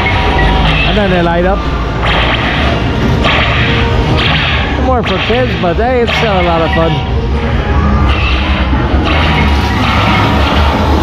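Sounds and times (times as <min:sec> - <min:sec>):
background music on a ride: 0:00.0 - 0:11.0
laser blaster zaps: 0:02.0 - 0:06.6, 0:08.1 - 0:11.0.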